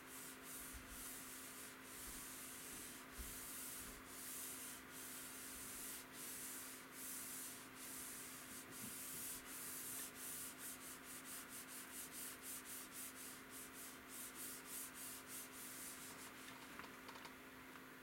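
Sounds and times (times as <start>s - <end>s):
palm rubbing monitor screen: 0.2s - 16.7s.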